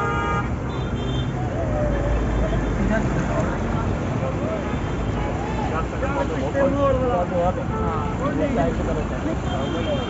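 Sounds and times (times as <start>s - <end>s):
car horn: 0.0s - 1.4s, 9.4s - 10.0s
traffic noise: 0.0s - 10.0s
people's voices: 1.3s - 10.0s.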